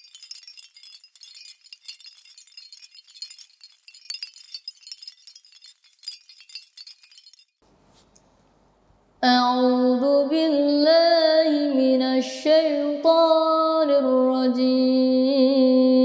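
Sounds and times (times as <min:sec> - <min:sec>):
sparkling tinkling sound effect: 0:00.0 - 0:07.6.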